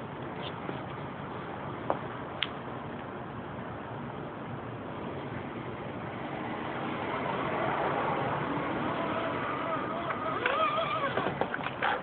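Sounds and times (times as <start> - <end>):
tyre noise on concrete: 6.7 - 12.0
electric motor and gears whining: 6.8 - 12.0.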